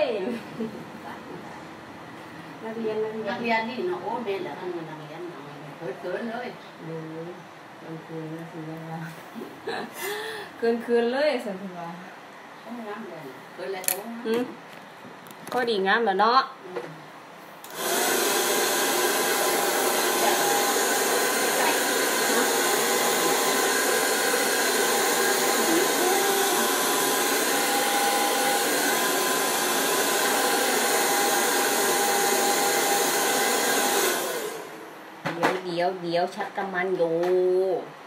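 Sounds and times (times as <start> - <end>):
hair dryer blowing: 17.6 - 34.9.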